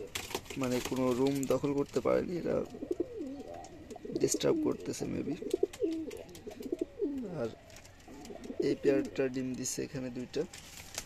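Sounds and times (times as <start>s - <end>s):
pigeons cooing: 0.0s - 0.3s, 2.2s - 9.3s.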